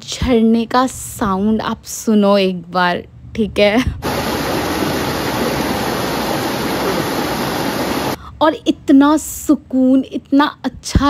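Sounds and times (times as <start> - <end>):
stream rushing over boulders: 4.0 - 8.2.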